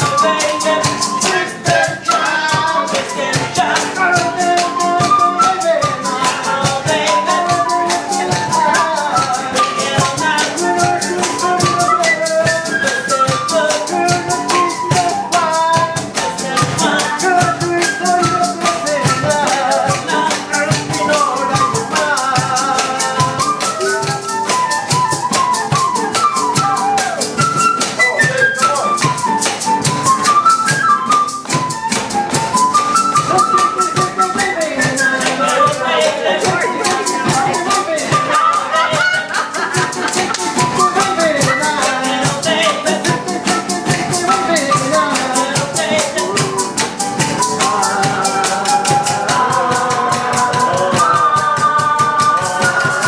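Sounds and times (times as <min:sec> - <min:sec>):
box drum beat: 0:00.0 - 0:53.0
fast shaker rhythm: 0:00.0 - 0:53.0
flute melody: 0:00.0 - 0:53.0
end-blown flute melody: 0:23.1 - 0:39.1.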